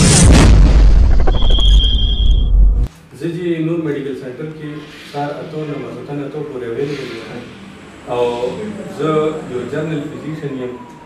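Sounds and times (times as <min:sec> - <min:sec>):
deep rumble: 0:00.0 - 0:02.9
high ringing tone: 0:01.1 - 0:02.7.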